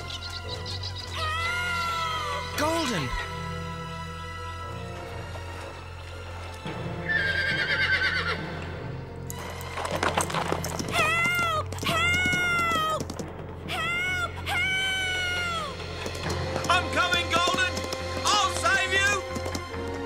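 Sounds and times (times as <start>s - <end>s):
background music: 0.0s - 20.0s
horse whinnying: 7.0s - 8.8s.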